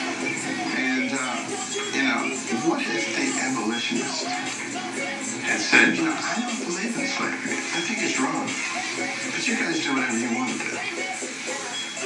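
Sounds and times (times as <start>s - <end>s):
music: 0.0s - 12.0s
man speaking on television: 0.6s - 4.4s, 5.4s - 10.9s.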